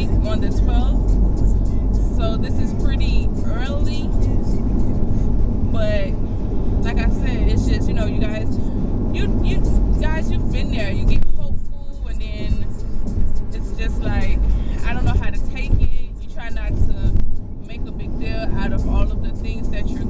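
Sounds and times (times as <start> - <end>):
woman speaking: 0.0 - 1.1, 2.0 - 4.6, 5.7 - 6.2, 6.8 - 12.8, 13.5 - 20.0
car interior rumble: 0.0 - 20.0.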